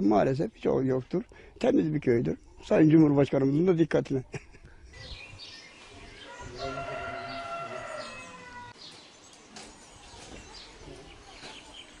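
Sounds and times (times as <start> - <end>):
small birds chirping: 0.0 - 12.0
rooster crowing: 6.2 - 8.8.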